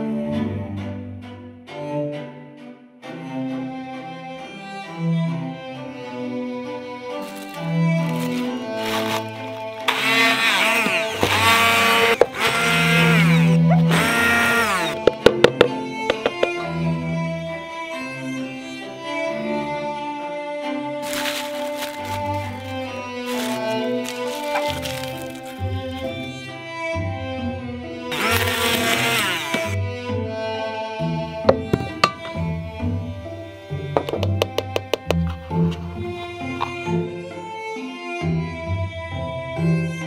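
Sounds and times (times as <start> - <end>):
string music: 0.0 - 40.0
electric grinder motor whine: 7.3 - 15.3, 28.1 - 29.8.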